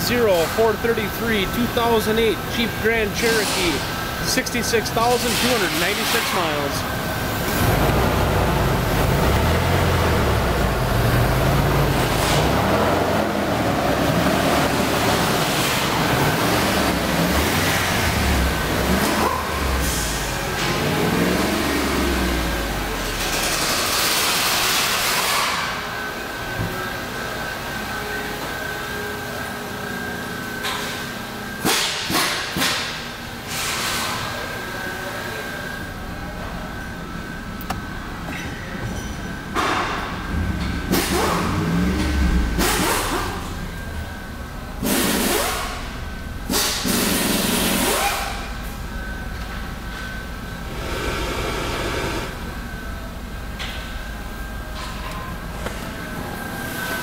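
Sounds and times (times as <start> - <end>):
car engine idling: 39.4 - 56.8.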